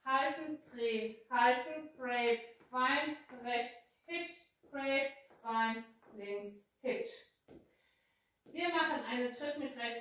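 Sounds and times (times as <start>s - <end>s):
woman calling out dance steps: 0.0s - 7.4s, 8.5s - 10.0s.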